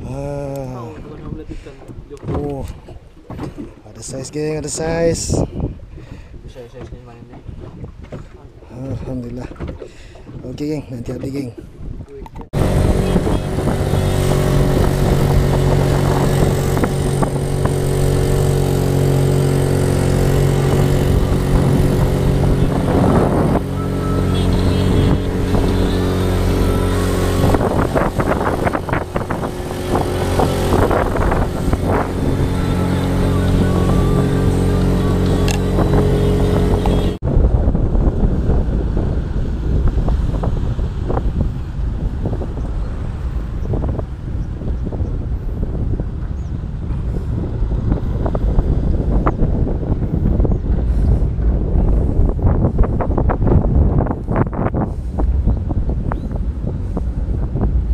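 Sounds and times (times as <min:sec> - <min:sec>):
boat engine running: 0:00.0 - 0:57.9
wind: 0:00.0 - 0:57.9
rushing water: 0:12.3 - 0:44.7
vehicle driving along road: 0:12.4 - 0:57.9.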